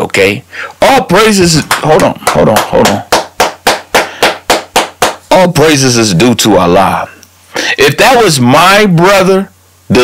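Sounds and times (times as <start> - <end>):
sharp percussive strikes: 1.7 - 5.3.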